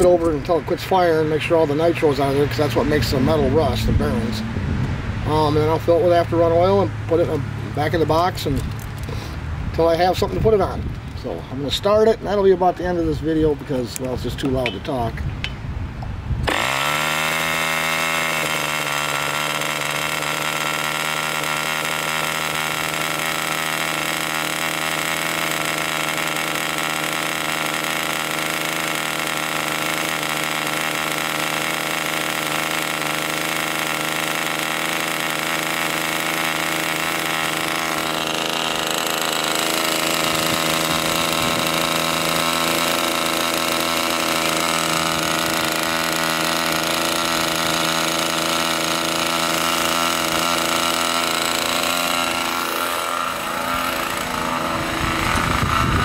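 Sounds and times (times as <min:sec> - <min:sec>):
model airplane engine buzzing: 0:16.4 - 0:56.0.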